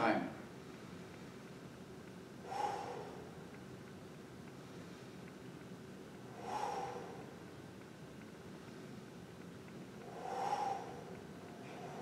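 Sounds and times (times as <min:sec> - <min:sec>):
man breathing in through nose: 0:06.3 - 0:07.3, 0:10.0 - 0:12.0.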